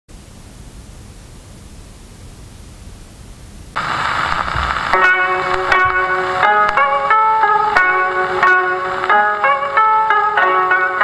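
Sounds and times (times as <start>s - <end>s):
faint hiss: 0.2s - 11.0s
record surface noise crackle: 3.7s - 10.2s
koto trio plucked notes: 5.0s - 11.0s.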